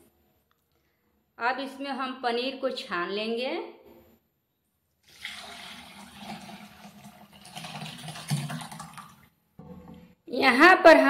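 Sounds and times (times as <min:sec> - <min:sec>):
liquid splashing through cloth: 0:05.0 - 0:09.3.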